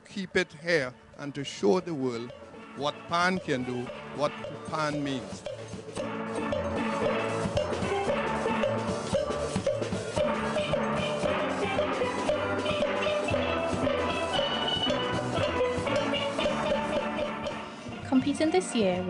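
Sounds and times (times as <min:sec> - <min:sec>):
drums keeping the beat: 0:00.0 - 0:19.0
steel pans ringing: 0:00.2 - 0:17.8.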